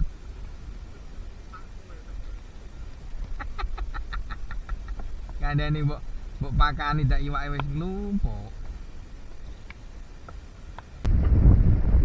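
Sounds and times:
low wind rumble: 0.0s - 12.0s
rapid animal calls: 1.3s - 10.3s.

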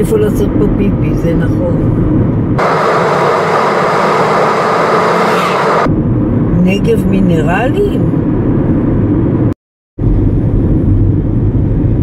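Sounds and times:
car engine and road rumble: 0.0s - 12.0s
loud even hiss: 2.6s - 5.9s.

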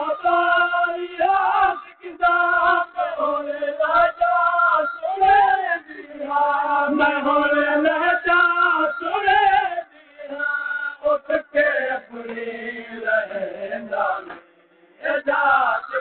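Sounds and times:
men chanting a lament: 0.0s - 14.4s, 15.0s - 16.0s.

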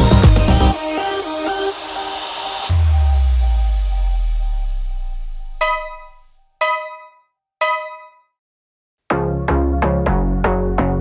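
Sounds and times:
bell-like timer ding: 5.6s - 8.3s.

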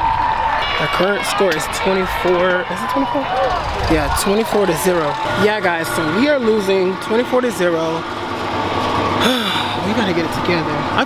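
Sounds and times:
steady background hum: 0.0s - 11.0s
breathy exhale: 9.2s - 9.8s.

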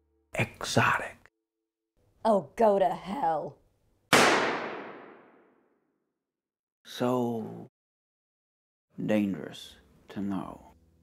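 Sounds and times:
gunshot with echoing tail: 4.1s - 5.5s.

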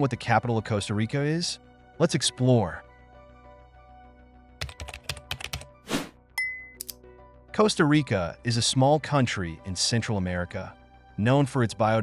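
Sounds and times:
soft background music: 0.0s - 12.0s
computer keyboard typing: 4.6s - 5.7s.

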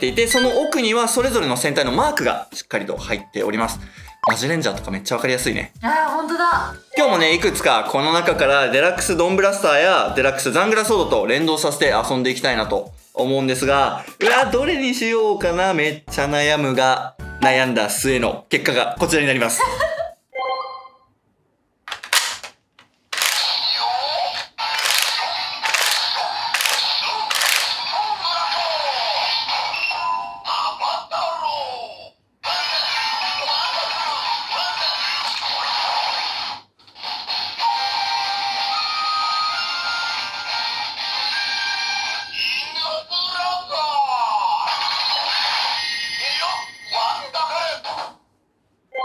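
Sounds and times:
tinny electronic jingle with voice calls: 0.1s - 0.8s
toy clicks: 23.1s - 23.6s, 24.2s - 27.9s.

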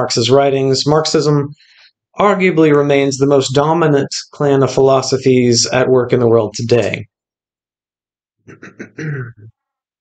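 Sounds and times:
man clearing his throat: 8.5s - 9.5s.

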